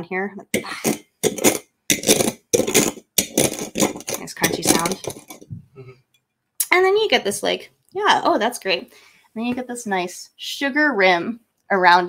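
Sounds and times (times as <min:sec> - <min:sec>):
mug rim grinding on sugar: 0:00.6 - 0:05.5.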